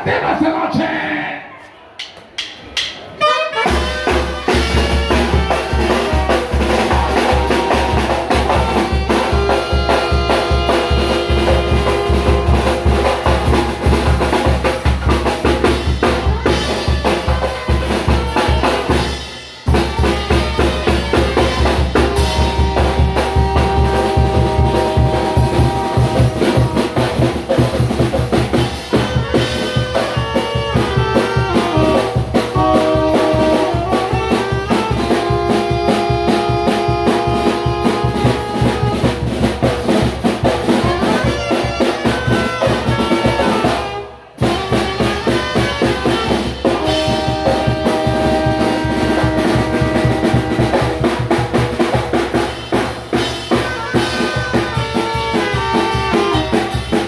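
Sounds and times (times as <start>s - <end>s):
bass drum and snare beat: 2.0s - 57.0s
saxophones and brass melody: 3.0s - 57.0s.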